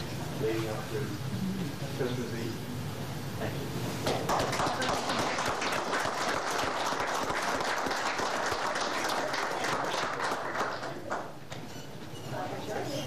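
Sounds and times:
audience applauding: 4.0 - 11.4.

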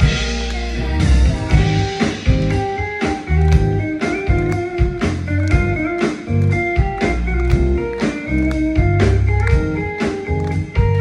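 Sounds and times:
drums hitting: 0.0 - 8.2
bass: 0.0 - 11.0
guitar: 0.0 - 11.0.

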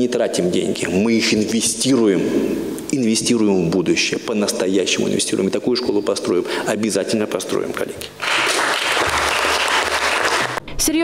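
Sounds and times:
audience applause: 8.2 - 10.6
woman speaking: 10.7 - 11.0.

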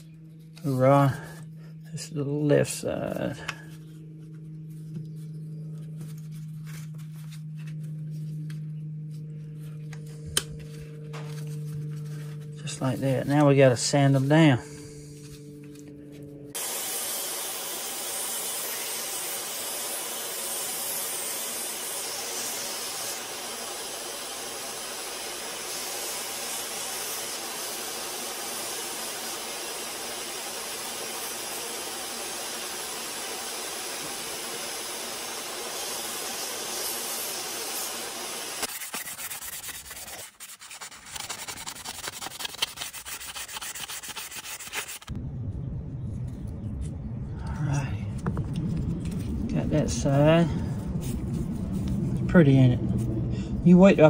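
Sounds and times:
belt sander running: 9.8 - 45.1
irregular scratching: 38.6 - 45.1.

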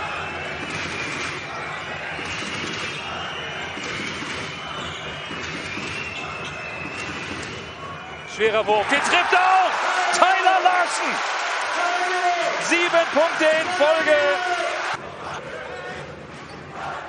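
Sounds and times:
arena crowd noise: 0.0 - 17.0.

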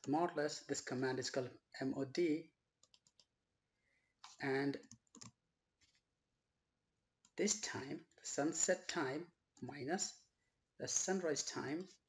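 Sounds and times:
person speaking: 4.3 - 4.9, 7.4 - 10.2, 10.8 - 12.0.

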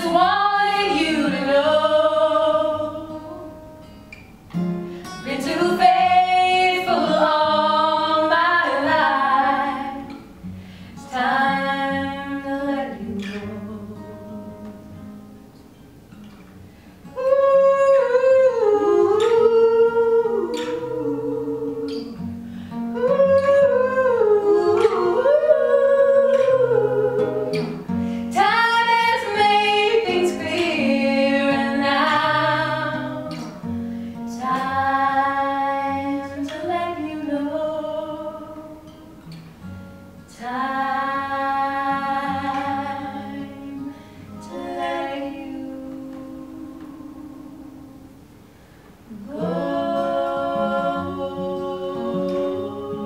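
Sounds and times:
women singing in harmony: 0.0 - 3.7, 5.1 - 10.4, 11.0 - 14.7, 17.1 - 39.3, 40.3 - 48.2, 49.1 - 53.0
acoustic guitar chords: 0.0 - 53.0.

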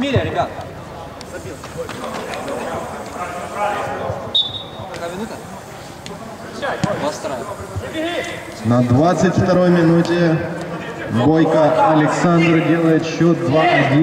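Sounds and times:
football kick thuds: 6.8 - 7.0.

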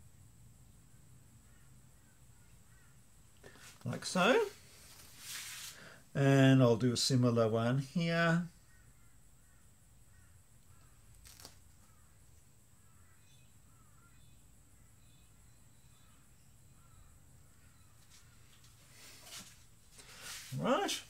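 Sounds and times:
faint bird chirps: 0.0 - 4.8, 8.4 - 21.0.

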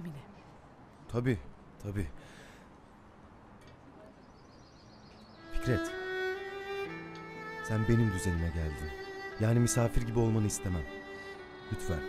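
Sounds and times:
faint high-pitched chirping: 4.0 - 5.8.

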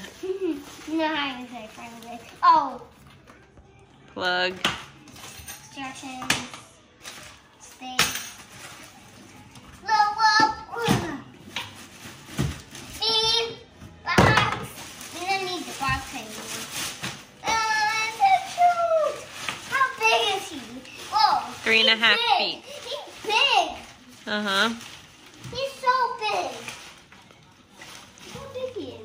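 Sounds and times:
inflatable rustling: 14.9 - 29.0.

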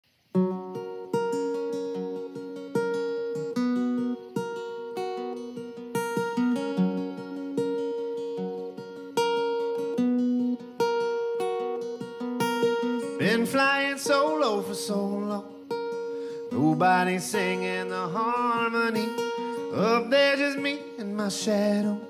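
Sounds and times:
fingerpicked acoustic guitar: 0.1 - 22.0.

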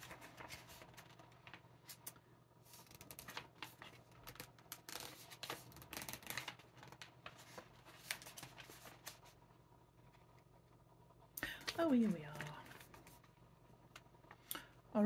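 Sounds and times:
paper rustling and crinkling: 0.0 - 9.4.

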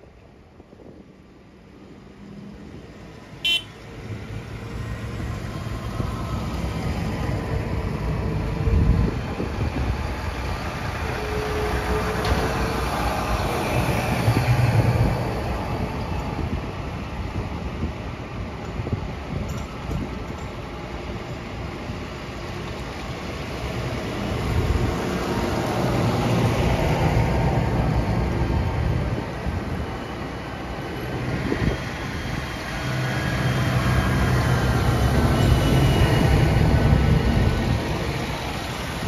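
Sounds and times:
tractor diesel engines passing: 1.6 - 39.0.

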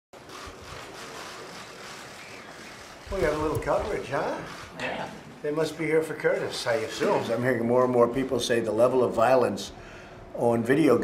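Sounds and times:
steady low hiss: 0.5 - 11.0.

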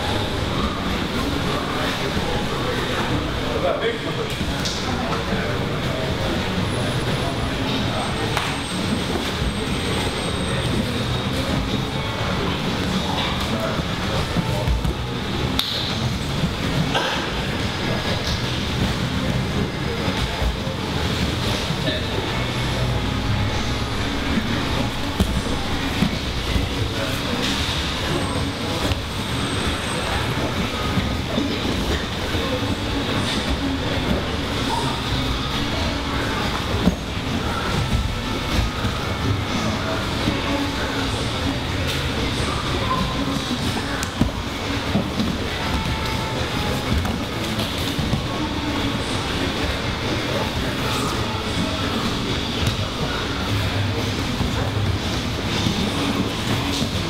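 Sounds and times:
indistinct voices: 0.0 - 57.0
rumbling room noise: 0.0 - 57.0.

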